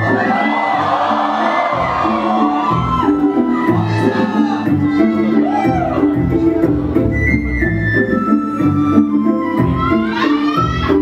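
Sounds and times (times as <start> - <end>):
audience cheering and whooping: 0.0 - 6.3
loud dance music: 0.0 - 11.0.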